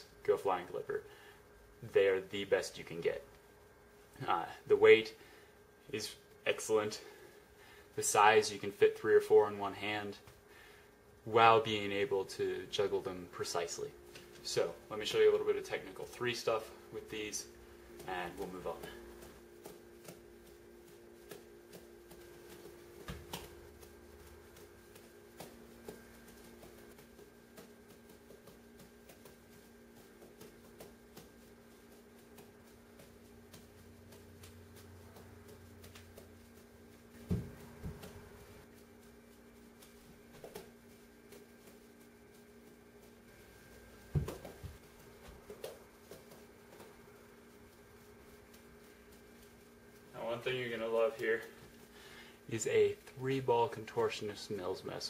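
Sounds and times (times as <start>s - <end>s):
juggling balls patting into hands: 11.8s - 55.0s.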